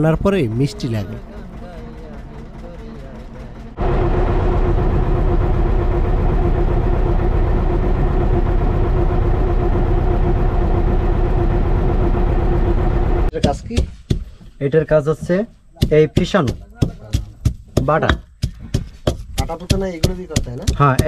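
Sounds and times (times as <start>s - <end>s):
engine droning: 0.0s - 13.4s.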